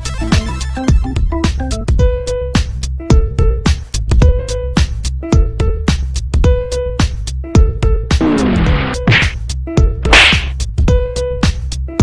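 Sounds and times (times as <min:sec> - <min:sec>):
upbeat electronic music: 0:00.0 - 0:01.9, 0:08.2 - 0:09.4
swish sound effects: 0:08.2 - 0:09.4, 0:10.1 - 0:10.6.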